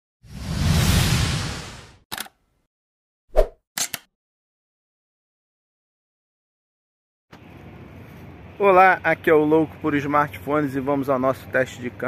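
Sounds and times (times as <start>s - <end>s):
sound effect clicks: 3.8s - 4.1s.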